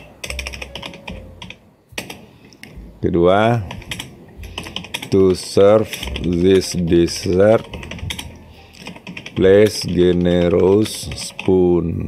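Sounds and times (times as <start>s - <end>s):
typing on computer keyboard: 0.0s - 2.8s, 3.5s - 11.8s.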